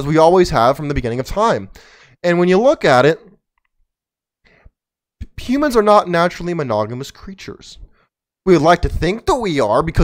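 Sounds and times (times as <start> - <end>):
man's voice: 0.0 - 3.4, 5.2 - 7.9, 8.5 - 10.0.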